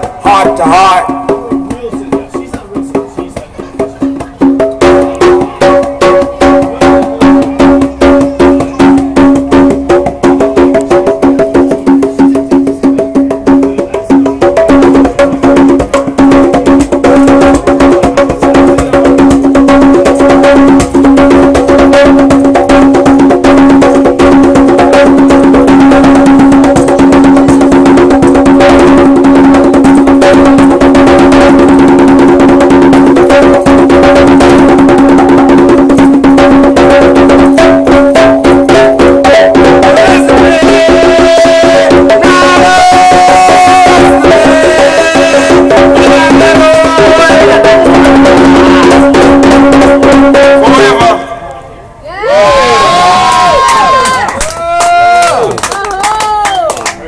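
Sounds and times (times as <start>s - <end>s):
conga drums played by hand: 0.0s - 51.2s, 52.7s - 57.0s.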